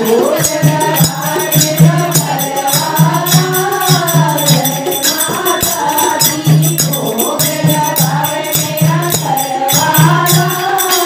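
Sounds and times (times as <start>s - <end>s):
jingling hand percussion: 0.0s - 11.0s
women singing in chorus: 0.0s - 11.0s.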